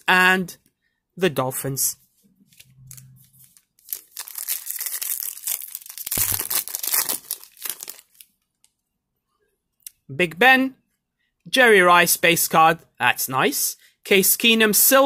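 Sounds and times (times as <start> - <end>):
foil pack ripping and crinkling: 3.4 - 8.3.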